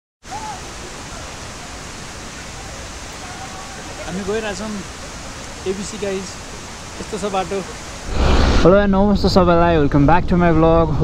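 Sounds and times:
stream rushing: 0.2s - 8.8s.

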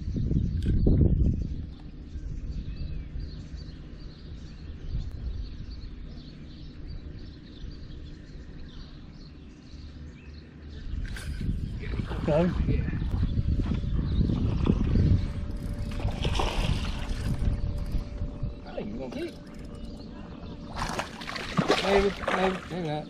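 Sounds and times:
low rumble: 0.0s - 22.7s
small birds chirping: 0.0s - 23.0s.

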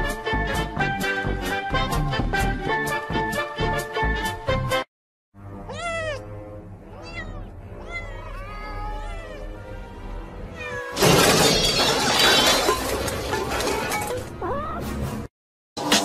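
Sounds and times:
low steady music: 5.4s - 10.7s
cat meowing: 5.7s - 6.2s, 6.9s - 9.6s, 10.5s - 11.0s, 14.4s - 14.8s
loud crash of shattering: 11.0s - 14.3s.

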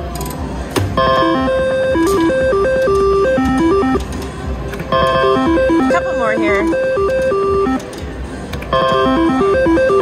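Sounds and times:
slot machine beeping jingle: 1.0s - 4.2s, 4.9s - 7.9s, 8.7s - 10.0s.

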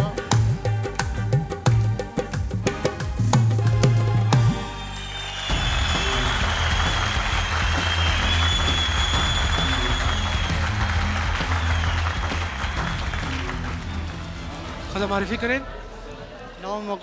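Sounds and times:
background music: 0.0s - 17.0s
studio audience applauding: 3.8s - 15.1s.

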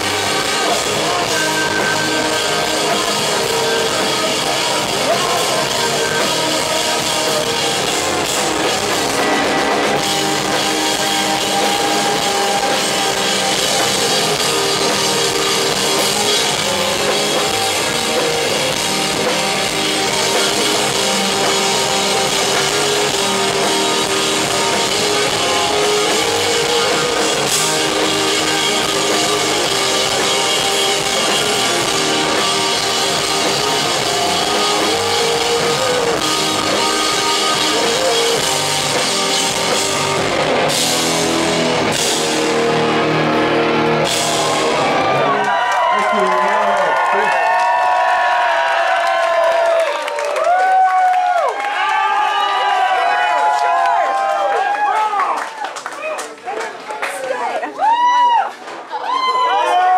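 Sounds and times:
bass guitar: 0.0s - 51.6s
electric guitars: 0.0s - 54.9s
drum kit: 0.0s - 55.2s.

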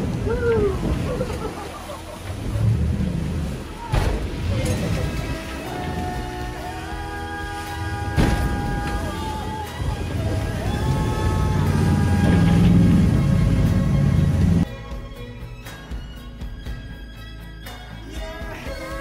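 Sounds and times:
jet boat running: 0.0s - 17.2s
background music: 0.0s - 19.0s.

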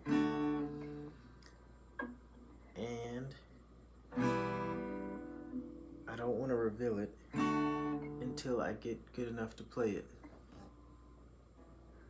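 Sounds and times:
acoustic guitar chord: 0.0s - 1.3s, 4.1s - 8.6s.

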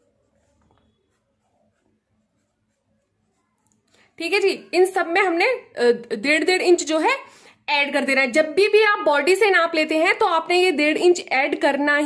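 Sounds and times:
pen scratching on paper: 0.0s - 5.6s.

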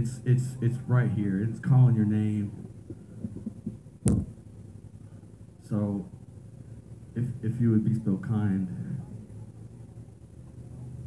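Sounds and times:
faint low bumps: 1.7s - 5.0s
sharp knock with low boom: 3.3s - 4.4s.

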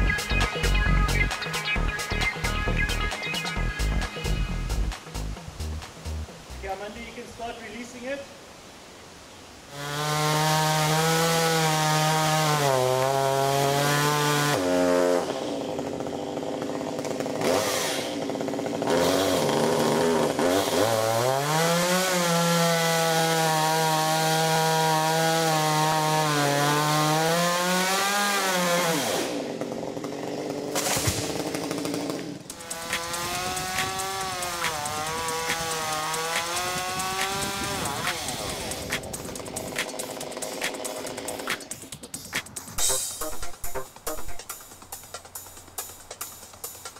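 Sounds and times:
chainsaw cutting wood: 9.7s - 46.9s.

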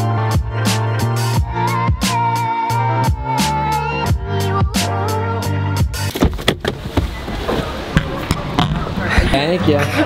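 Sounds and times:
background music with beat: 0.0s - 6.2s
car door opening: 6.0s - 9.4s
car door handle clicks: 6.1s - 7.1s.

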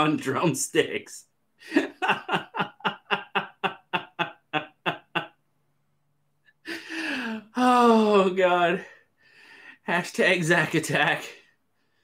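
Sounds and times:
man laughing hard: 1.6s - 5.4s.

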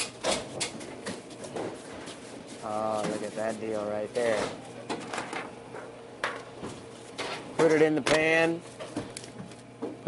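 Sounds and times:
gloved hands rustling dough: 1.2s - 4.4s.

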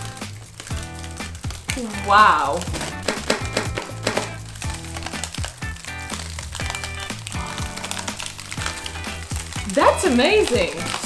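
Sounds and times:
background music: 0.0s - 11.0s
glue-stiffened thread ball crunching: 0.4s - 11.0s.

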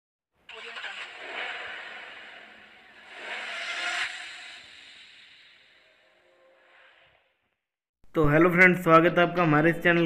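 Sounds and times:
car engine rush: 0.5s - 7.0s.

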